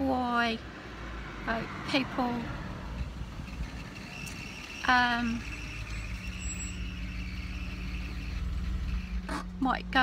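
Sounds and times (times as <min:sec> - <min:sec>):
vehicle engine rumbling inside cabin: 0:00.0 - 0:10.0.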